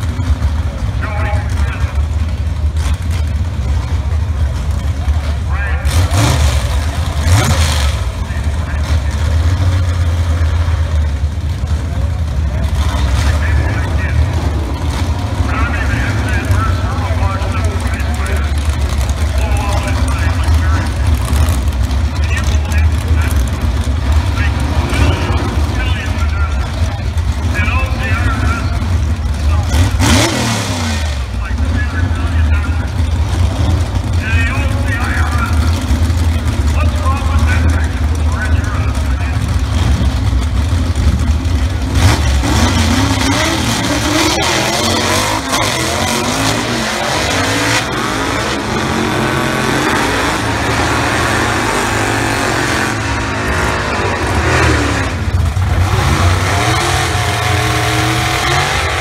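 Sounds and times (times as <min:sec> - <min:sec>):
drag car engines accelerating: 0:00.0 - 0:59.0.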